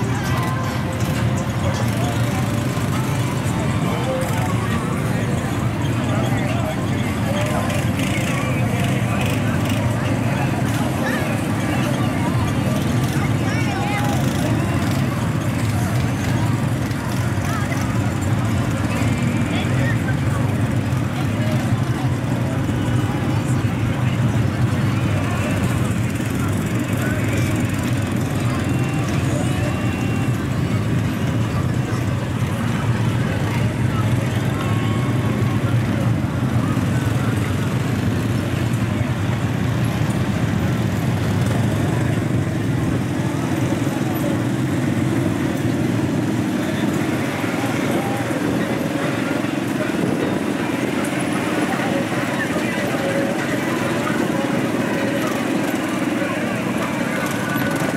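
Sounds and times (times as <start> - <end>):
atv engines humming: 0.0 - 57.9
people's voices: 0.0 - 57.9.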